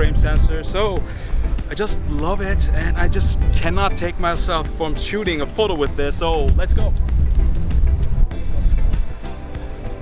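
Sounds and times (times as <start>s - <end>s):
music with heavy bass: 0.0s - 10.0s.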